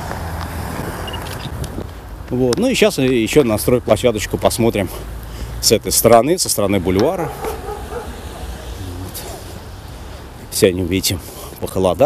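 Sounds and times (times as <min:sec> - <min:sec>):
car rumbling on street: 0:00.0 - 0:12.0.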